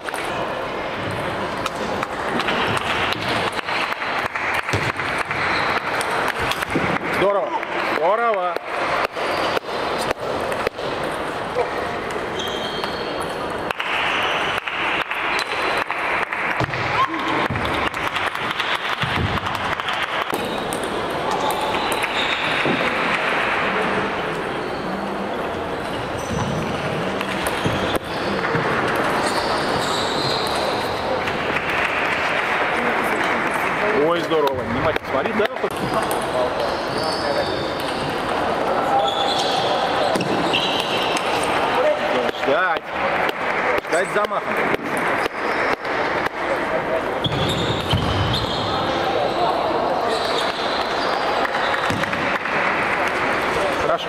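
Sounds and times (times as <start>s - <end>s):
murmur of voices: 0.0s - 54.0s.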